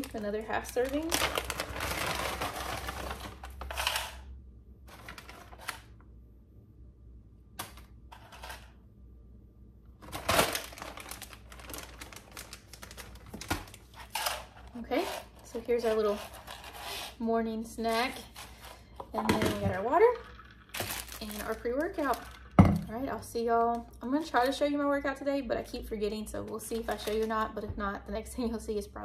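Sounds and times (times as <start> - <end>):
plastic snack bag crinkling: 0.0 - 4.1, 4.9 - 5.9, 10.0 - 17.0, 19.8 - 22.6.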